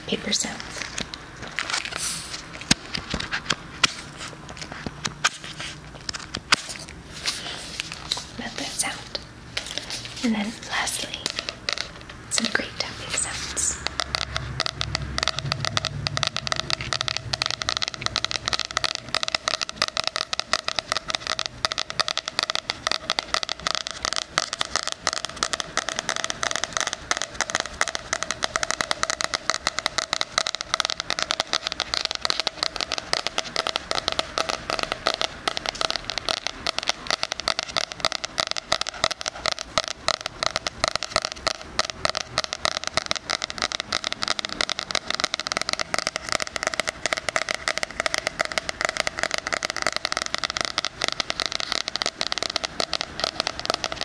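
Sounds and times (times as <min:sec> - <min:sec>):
fingers tapping and scratching cover: 0:02.6 - 0:54.0.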